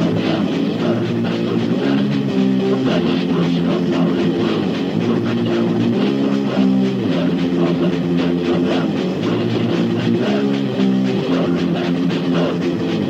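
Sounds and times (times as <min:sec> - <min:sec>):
bass guitar: 0:00.0 - 0:13.0
distorted electric guitar riffing: 0:00.0 - 0:13.0
drums: 0:00.0 - 0:13.0.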